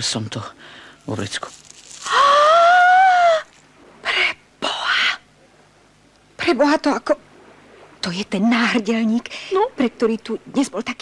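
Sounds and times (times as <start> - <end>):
person exclaiming ooh: 2.0 - 3.5.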